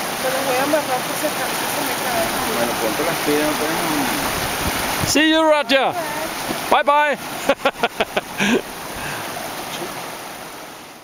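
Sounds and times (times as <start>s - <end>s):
river rushing over stones: 0.0s - 11.0s.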